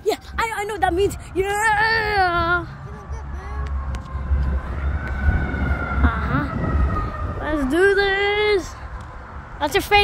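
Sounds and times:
siren wailing: 0:00.0 - 0:09.5
wind rumbling on microphone: 0:00.2 - 0:10.0.

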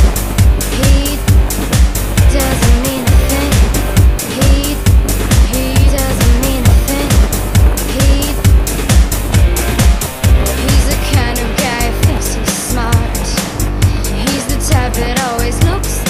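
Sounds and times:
pop music with steady beat: 0:00.0 - 0:16.0.

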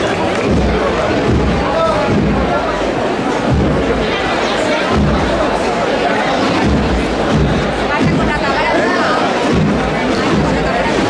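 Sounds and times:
crowd talking: 0:00.0 - 0:11.0.

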